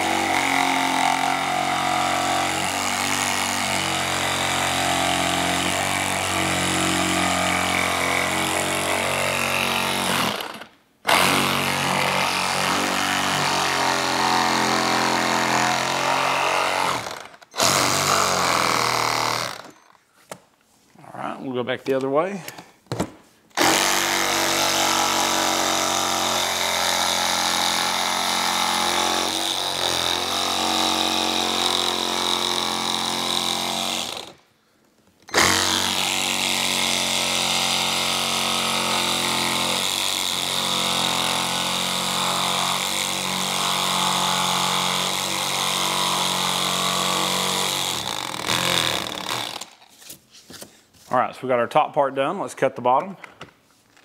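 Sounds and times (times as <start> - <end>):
reciprocating saw cutting: 0.0 - 19.8, 23.6 - 34.4, 35.3 - 49.8.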